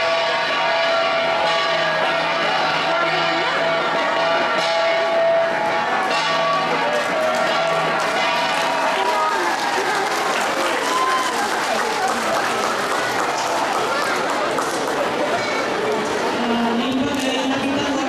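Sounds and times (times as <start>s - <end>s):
bronze gongs ringing: 0.0s - 10.0s
crowd chatter: 0.0s - 18.0s
crowd clapping: 6.7s - 16.4s.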